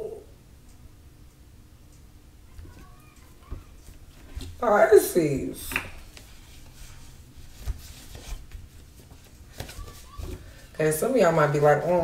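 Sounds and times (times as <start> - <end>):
low room hum: 0.0 - 12.0
cards tapping and rustling: 7.5 - 10.6.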